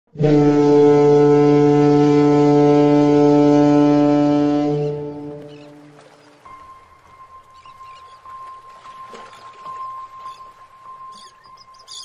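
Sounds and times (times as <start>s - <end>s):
long low horn blast: 0.1s - 5.9s.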